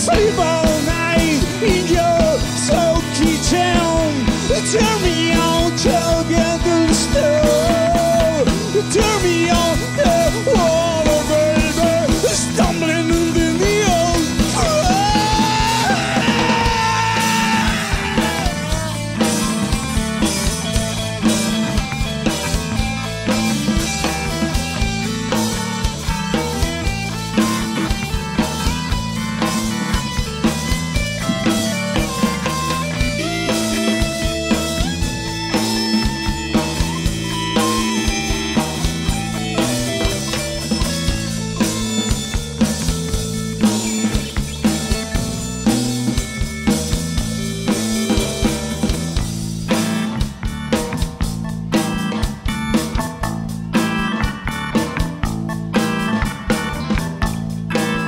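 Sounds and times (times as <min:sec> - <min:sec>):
electric guitar bent notes: 0:00.0 - 0:58.0
rock band playing: 0:00.0 - 0:58.0.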